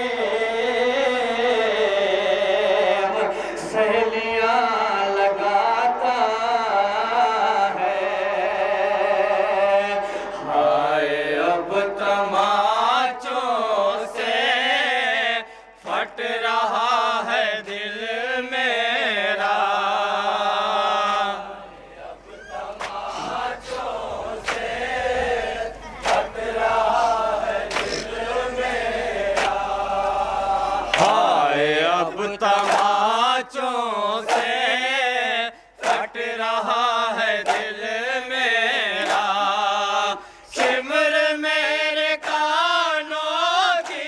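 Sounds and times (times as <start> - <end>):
man singing lament through microphone: 0.0 - 21.4, 25.0 - 44.0
rhythmic chest-beating: 19.4 - 44.0.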